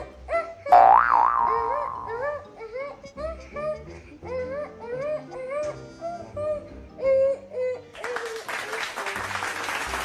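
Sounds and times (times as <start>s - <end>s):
bouncy children's music: 0.0s - 7.7s
cartoon boing sound effect: 0.7s - 2.2s.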